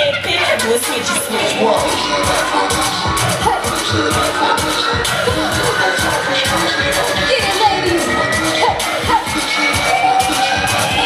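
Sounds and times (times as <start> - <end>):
loud live music with beat: 0.0 - 11.0.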